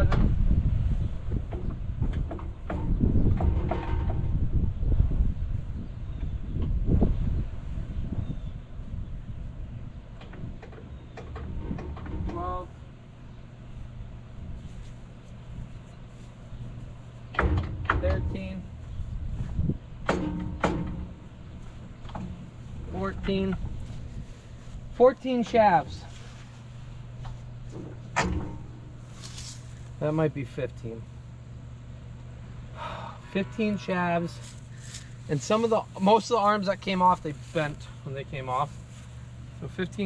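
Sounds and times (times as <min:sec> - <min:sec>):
wind buffeting microphone: 0:00.0 - 0:15.9, 0:16.5 - 0:26.1
steady low rumble: 0:00.0 - 0:40.0
sharp knocks with ringing tone: 0:20.0 - 0:21.3.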